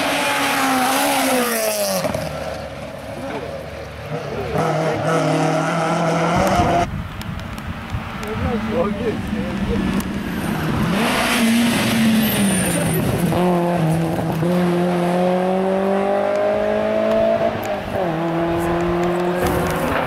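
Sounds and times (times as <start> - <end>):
car engine accelerating hard: 4.0 - 6.9, 8.6 - 20.0.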